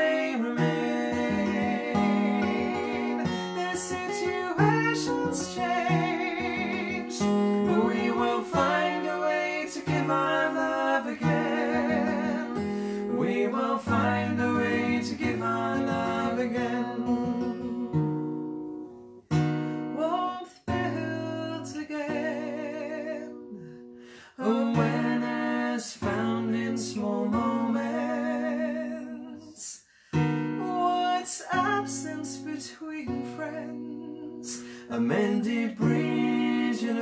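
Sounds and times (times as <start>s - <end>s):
woman singing: 0.0s - 16.9s, 32.5s - 37.0s
man singing: 0.0s - 17.9s, 19.9s - 29.8s, 30.6s - 37.0s
strummed acoustic guitar: 0.0s - 37.0s.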